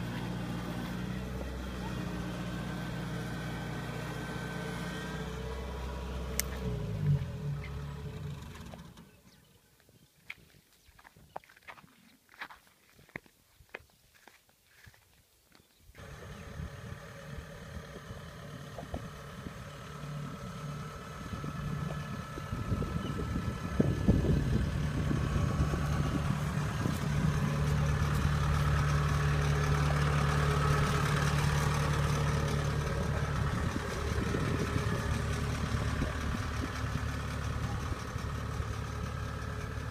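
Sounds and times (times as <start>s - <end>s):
diesel engine running: 0.0s - 9.6s, 16.0s - 39.9s.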